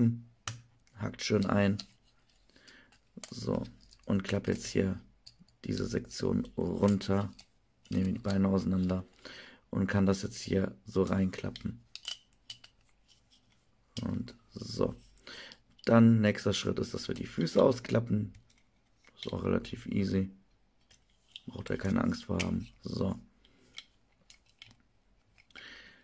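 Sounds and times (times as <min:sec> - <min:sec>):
plastic parts clicking: 0:00.4 - 0:05.9, 0:11.3 - 0:12.9, 0:18.3 - 0:19.5, 0:20.8 - 0:25.6
plastic action figure parts clicking: 0:11.4 - 0:12.8.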